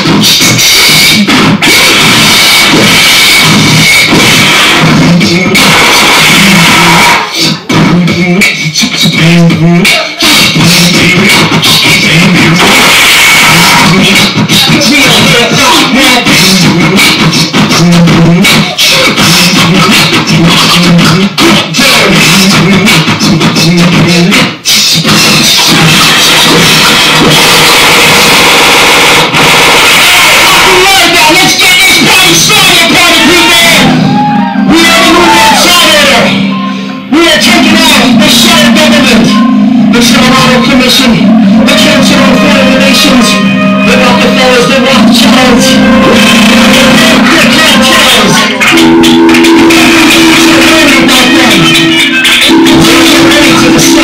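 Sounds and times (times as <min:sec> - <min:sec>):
beatboxing: 0:00.0 - 0:54.0
music through club speakers: 0:00.0 - 0:54.0.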